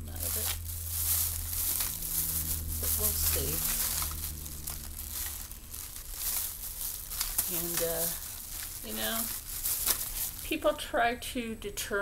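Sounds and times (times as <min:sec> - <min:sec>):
rustling and crinkling: 0:00.0 - 0:10.8
low steady hum: 0:00.0 - 0:12.0.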